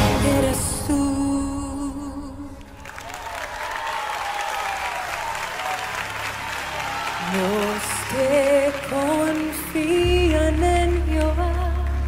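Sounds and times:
music: 0.0s - 2.8s, 5.9s - 12.0s
audience applauding: 2.7s - 12.0s.

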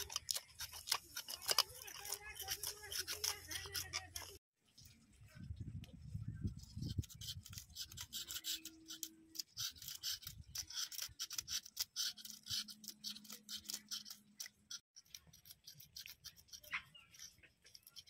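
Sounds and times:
knife scraping fish scales: 0.0s - 4.5s, 6.5s - 18.0s.

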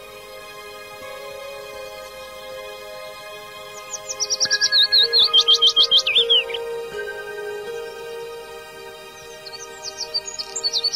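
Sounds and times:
soft background music: 0.0s - 10.9s
bird chirping: 3.6s - 10.9s.

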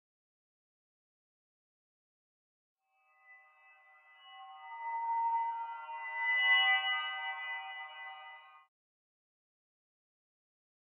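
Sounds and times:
sustained high electronic tones: 2.9s - 8.6s.

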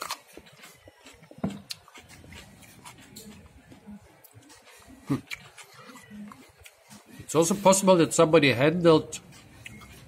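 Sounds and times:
man chewing: 0.0s - 10.0s.

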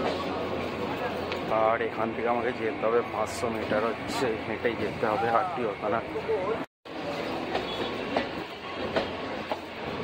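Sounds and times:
train rumbling past: 0.0s - 10.0s.

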